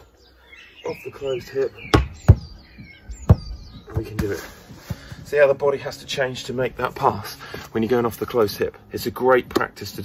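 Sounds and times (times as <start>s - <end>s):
birds chirping: 0.0s - 10.0s
ball thudding on lawn: 1.9s - 2.6s.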